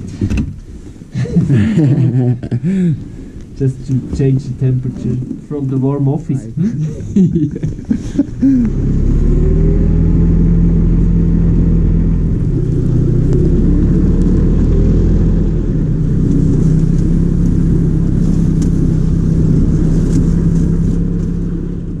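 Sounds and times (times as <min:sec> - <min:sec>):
snowmobile engine running: 0:03.6 - 0:22.0.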